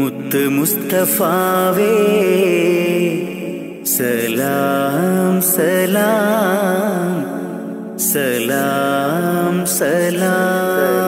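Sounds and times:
person singing long held notes: 8.0 - 11.0.

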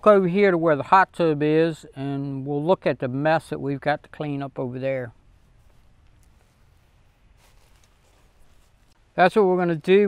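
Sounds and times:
footsteps on dry leaves: 5.4 - 9.0.

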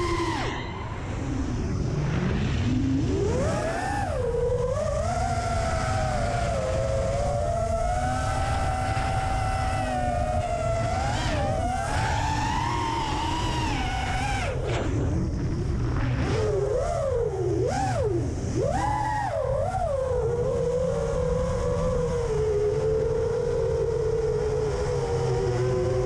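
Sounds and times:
quadcopter motors whining: 0.0 - 2.0, 2.6 - 26.0
wind rumble on microphone: 0.0 - 26.0.

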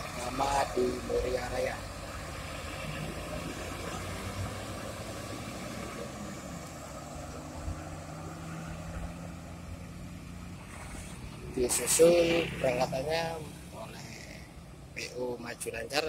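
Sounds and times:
bus diesel engines humming: 0.0 - 16.0
held low engine tone: 0.0 - 16.0.

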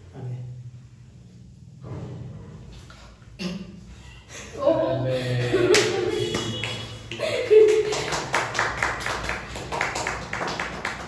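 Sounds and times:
hands clapping: 5.6 - 11.0.

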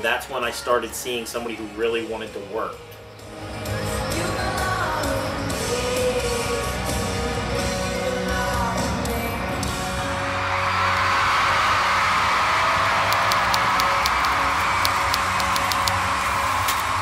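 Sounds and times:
crowd cheering and screaming: 10.0 - 17.0
sharp claps: 13.1 - 16.9.

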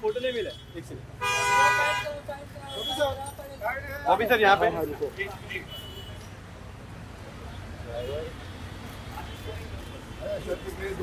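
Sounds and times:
vehicle horn honking: 1.2 - 3.2.

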